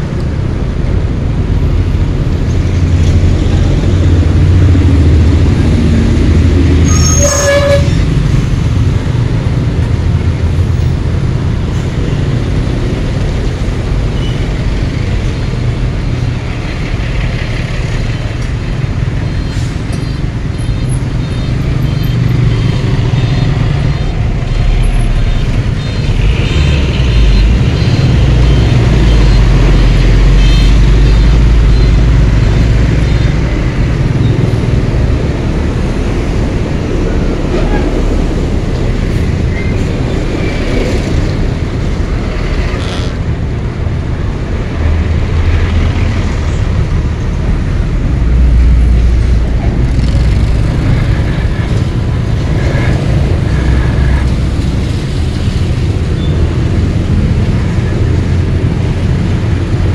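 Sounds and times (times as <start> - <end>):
scooter engine and road rumble: 0.0 - 59.9.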